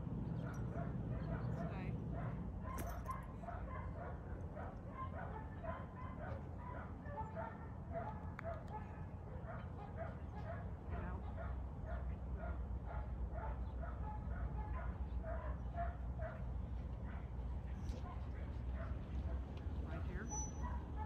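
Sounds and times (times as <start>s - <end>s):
dog yipping: 20.0s - 21.0s.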